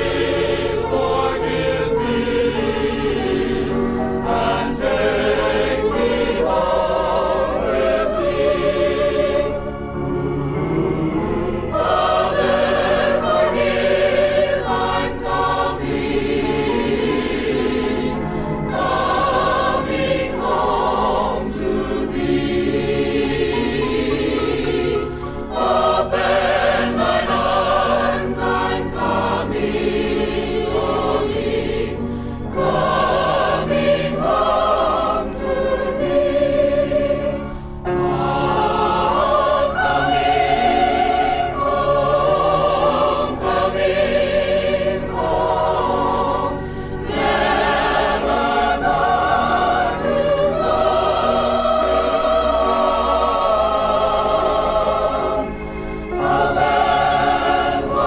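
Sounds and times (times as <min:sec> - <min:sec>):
choir singing gospel: 0:00.0 - 0:58.0.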